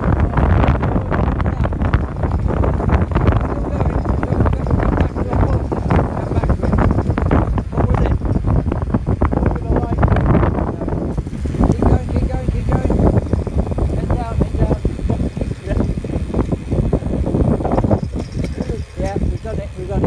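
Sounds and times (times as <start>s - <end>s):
heavy wind buffeting microphone: 0.0s - 20.0s
muffled voices: 3.0s - 8.4s.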